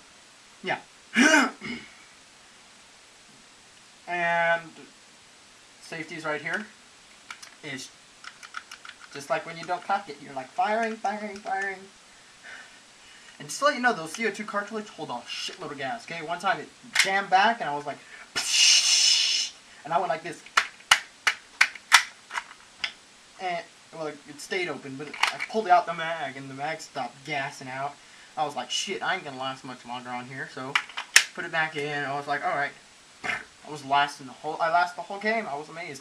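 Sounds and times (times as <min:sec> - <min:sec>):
man speaking: 0:00.6 - 0:01.8, 0:04.1 - 0:04.9, 0:05.8 - 0:06.8, 0:07.6 - 0:07.9, 0:09.1 - 0:11.9, 0:13.4 - 0:20.5, 0:23.4 - 0:36.0
man clearing throat: 0:01.1 - 0:02.0
person making hissing sound: 0:01.1 - 0:02.2, 0:12.2 - 0:13.5, 0:17.9 - 0:19.9, 0:33.2 - 0:33.5.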